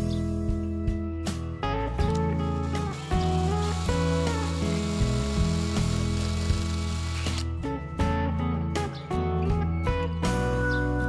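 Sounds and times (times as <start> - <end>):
background guitar music: 0.0 - 11.0
cordless drill boring into wood: 2.6 - 7.5.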